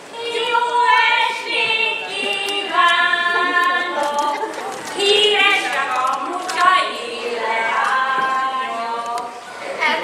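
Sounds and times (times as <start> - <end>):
women singing together: 0.1 - 10.0.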